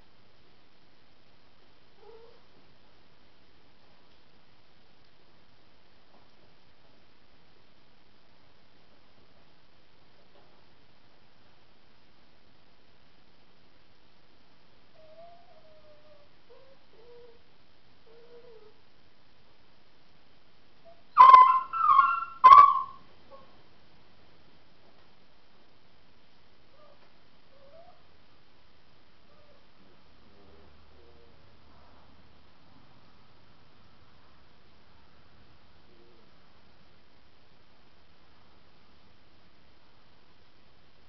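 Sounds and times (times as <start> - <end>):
small dog whining: 2.0 - 2.4, 15.0 - 17.4, 18.1 - 18.8, 20.8 - 23.5, 26.7 - 28.0, 29.3 - 29.6
dog yelping howls: 20.9 - 23.5, 26.8 - 28.0.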